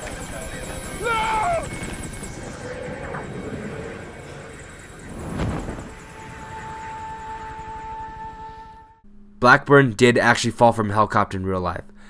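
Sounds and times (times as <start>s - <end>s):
helicopter rotor noise: 0.0s - 8.8s
tense music score: 0.0s - 10.6s
low rumble: 1.6s - 9.1s.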